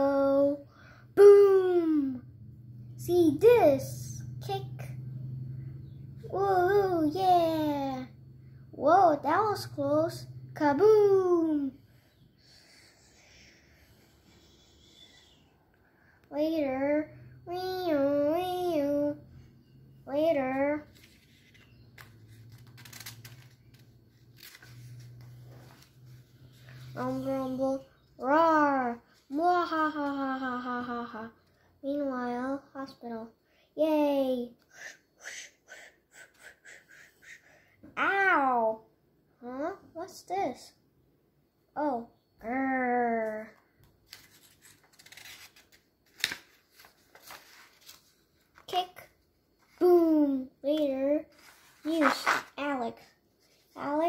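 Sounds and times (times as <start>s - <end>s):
paper page rustling: 20.8s - 27.3s, 44.0s - 48.8s, 51.3s - 52.6s
crisp paper flick: 43.8s - 48.7s.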